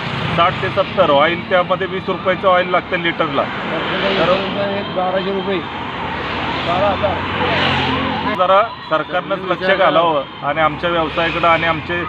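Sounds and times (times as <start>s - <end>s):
vehicle engine passing by: 0.0s - 8.4s.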